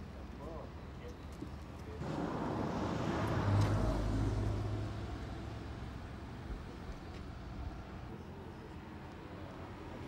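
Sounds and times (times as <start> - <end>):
vehicle passing by: 2.0 - 5.8.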